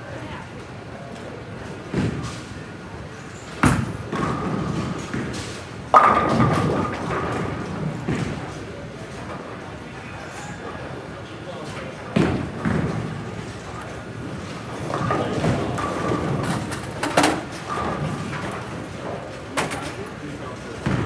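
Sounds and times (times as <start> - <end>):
background chatter: 0.0 - 5.8, 7.4 - 21.0
bowling balls hitting pins: 5.9 - 8.4.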